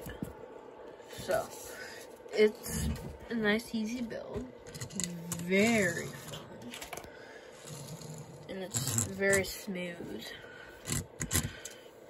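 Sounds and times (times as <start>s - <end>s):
toy car rolling on wooden table: 4.6s - 7.0s, 7.6s - 9.6s.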